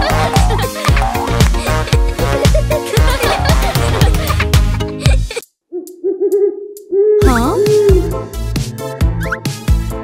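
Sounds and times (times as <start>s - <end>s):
cartoon owl hoot: 5.7s - 8.3s.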